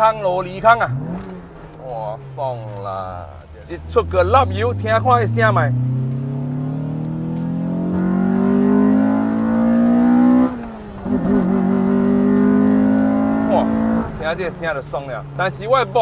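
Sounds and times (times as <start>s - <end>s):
car engine accelerating: 0.0s - 16.0s.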